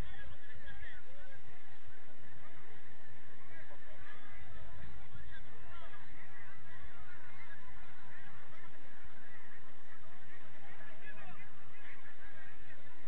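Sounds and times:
babble of overlapping calls: 0.0s - 13.0s.

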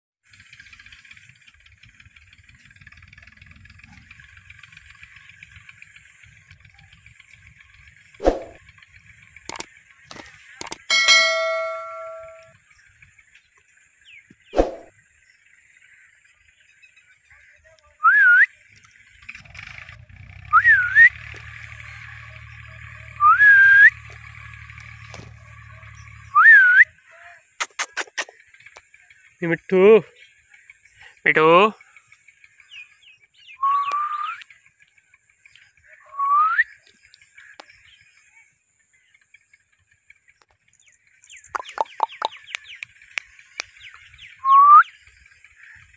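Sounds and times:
high background buzz: 10.6s - 12.5s
low drone: 10.6s - 12.8s, 19.3s - 26.7s
parakeet rising whistles: 33.6s - 34.4s, 44.4s - 44.9s
parakeet calling: 41.4s - 42.8s.

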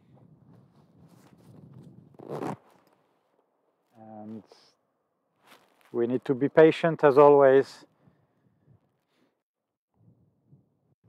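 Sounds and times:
rustling and scraping: 5.4s - 6.0s.

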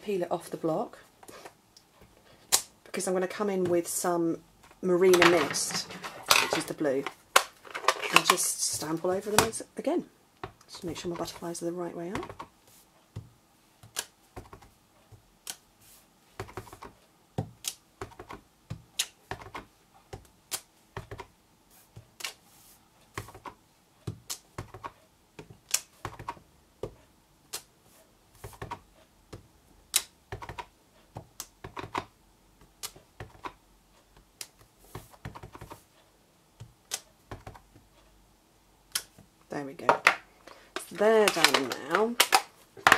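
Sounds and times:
rubber stamp tapping and clicking: 13.1s - 15.6s, 16.4s - 21.3s, 23.1s - 27.7s, 28.4s - 35.8s, 36.6s - 37.9s, 38.9s - 42.9s.

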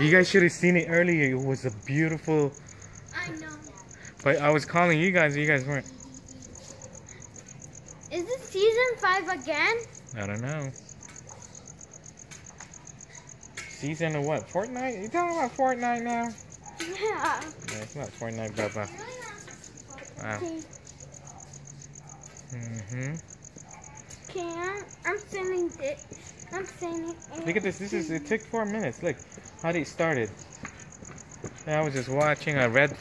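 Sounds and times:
crickets chirping: 0.0s - 33.0s.

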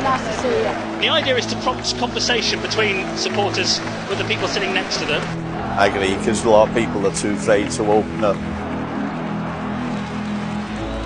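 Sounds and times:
crowd murmur: 0.0s - 1.9s
soft background music: 0.0s - 11.0s.

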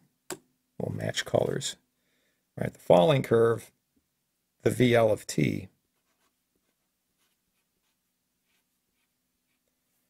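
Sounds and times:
marker writing on paper: 6.0s - 9.6s.

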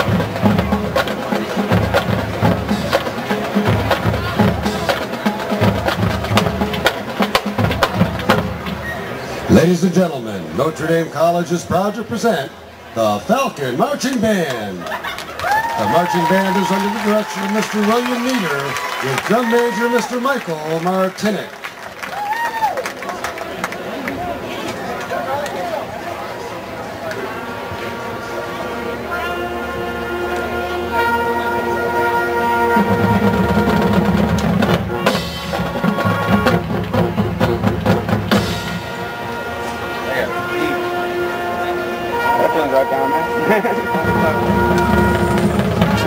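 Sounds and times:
marching band playing: 0.0s - 22.0s, 26.6s - 46.0s.

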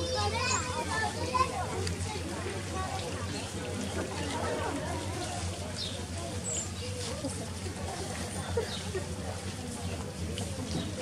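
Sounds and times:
child's high voice: 0.0s - 1.7s.

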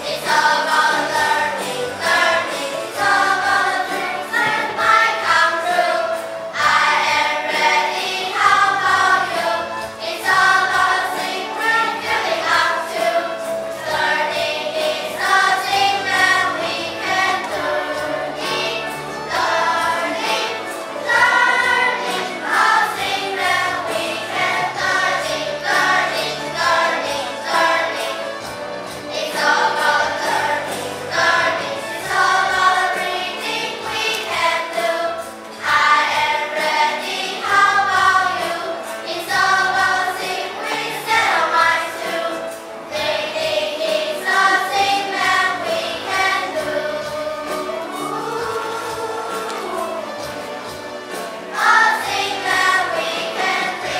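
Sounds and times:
children's choir singing: 0.0s - 53.9s
instrumental accompaniment: 0.0s - 53.9s.

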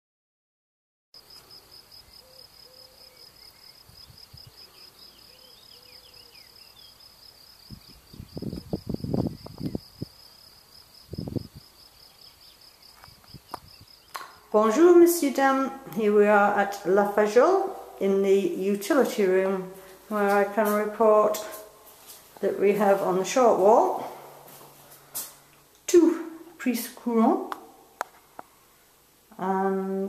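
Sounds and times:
insects trilling: 1.2s - 15.0s
faint bird calls: 2.1s - 3.8s, 4.6s - 7.0s.

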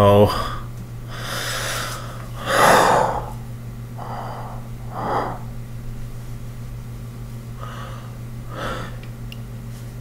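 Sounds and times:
steady low hum: 0.0s - 10.0s
man gasping: 0.3s - 3.4s, 4.0s - 5.5s.

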